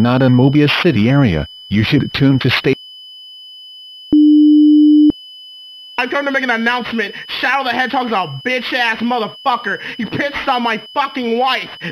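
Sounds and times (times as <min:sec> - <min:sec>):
low electronic tone: 0:00.0 - 0:02.8
faint high whine: 0:00.0 - 0:11.9.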